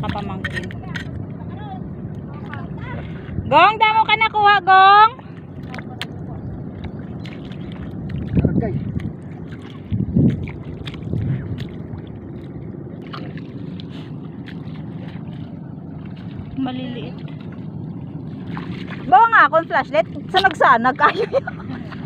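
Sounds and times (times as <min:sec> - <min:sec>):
wind rumble on microphone: 0:00.0 - 0:22.0
footsteps splashing through water: 0:05.2 - 0:19.3.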